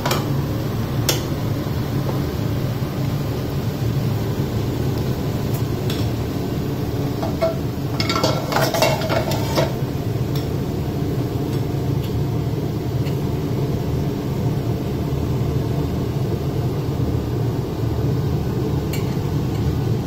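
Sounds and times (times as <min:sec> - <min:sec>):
cookware and utensils clinking: 0:07.2 - 0:09.8
utensils scraping: 0:07.4 - 0:09.8.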